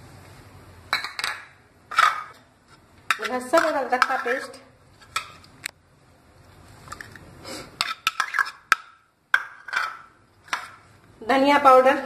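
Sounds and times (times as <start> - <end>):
spoon knocking and scraping a bowl: 3.1 - 5.4, 7.8 - 10.8.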